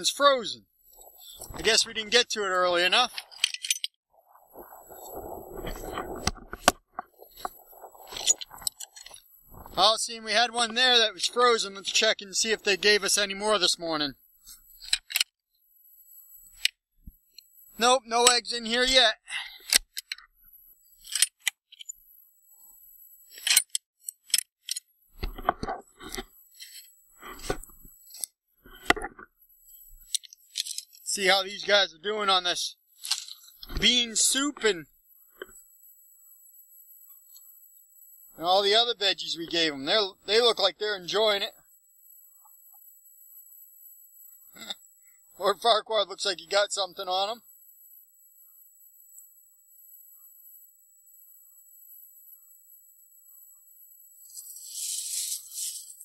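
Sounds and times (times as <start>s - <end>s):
footsteps crunching on snow: 4.4s - 8.6s, 54.3s - 56.0s
small clicks and knocks: 14.8s - 15.4s, 23.3s - 29.3s, 29.9s - 31.0s
rustling scrape at wooden door: 54.3s - 56.0s.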